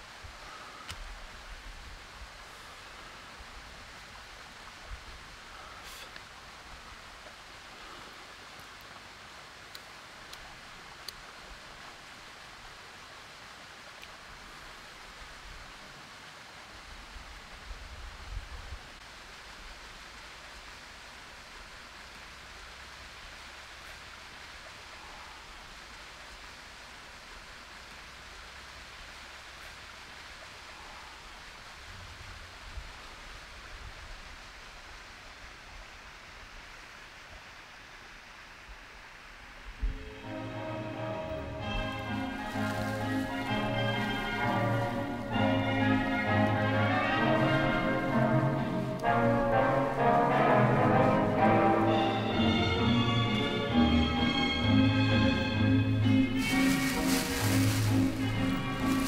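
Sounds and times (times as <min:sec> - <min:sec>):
breeze and rustling: 0:00.0 - 0:59.0
wind rumble on microphone: 0:03.2 - 0:05.7, 0:16.8 - 0:19.9, 0:31.6 - 0:36.0.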